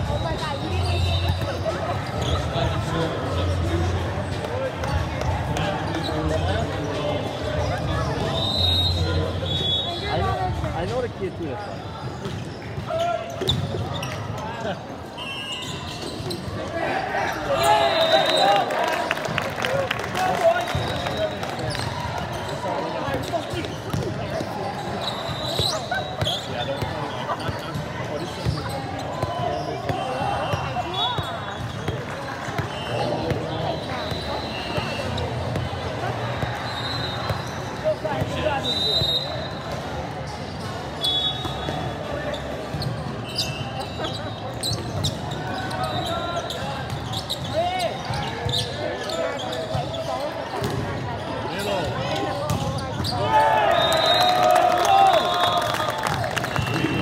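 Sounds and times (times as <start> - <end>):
chatter of players and spectators: 0.0 - 57.0.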